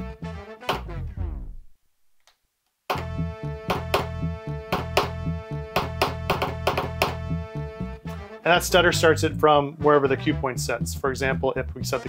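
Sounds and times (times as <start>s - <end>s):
music track stuttering: 0.0s - 1.8s.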